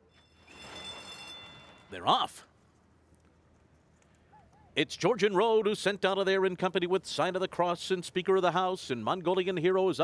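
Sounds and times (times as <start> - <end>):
starting bell ringing: 0.0 - 2.3.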